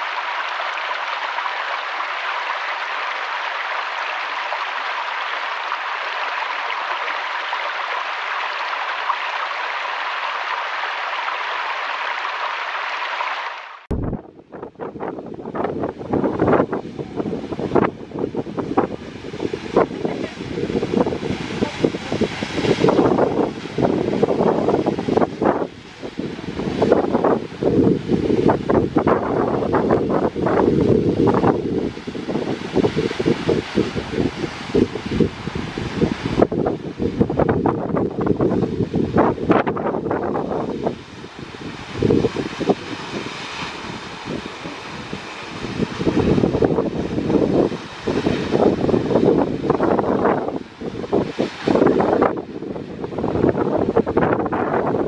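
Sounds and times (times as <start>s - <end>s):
rushing waterfall: 0.0s - 55.0s
wind buffeting microphone: 13.9s - 55.0s.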